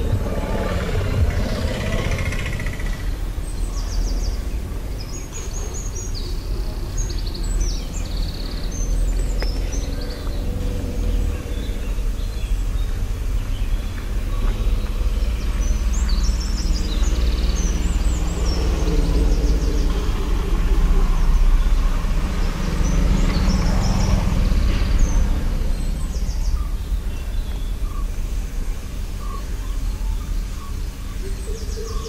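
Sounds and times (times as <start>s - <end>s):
steady low rumble: 0.0s - 31.7s
broad noise: 0.0s - 32.0s
small birds chirping: 0.0s - 32.0s.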